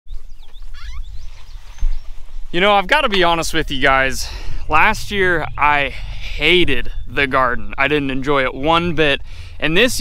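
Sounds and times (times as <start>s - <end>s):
faint bird chirps: 0.1s - 2.5s
wind rumble on microphone: 0.1s - 10.0s.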